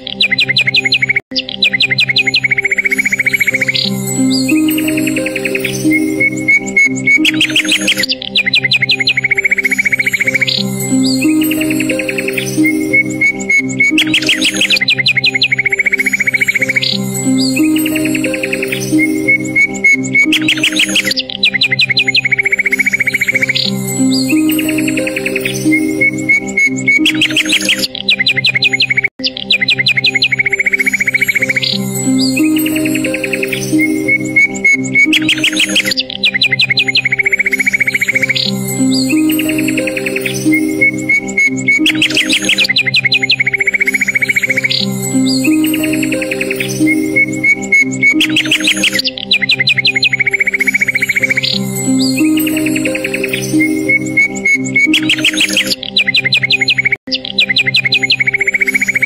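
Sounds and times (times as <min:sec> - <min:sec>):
birdsong chirps: 0:00.0 - 0:59.0
relaxing instrumental music: 0:00.0 - 0:59.0.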